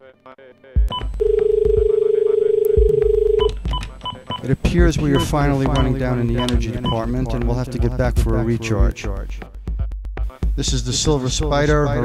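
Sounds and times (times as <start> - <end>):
low thumping beats: 0.8 - 1.9, 2.7 - 12.0.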